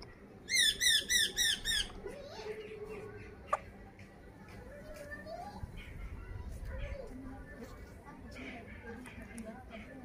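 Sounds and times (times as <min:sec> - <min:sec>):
parakeet squawking: 0:00.5 - 0:01.9.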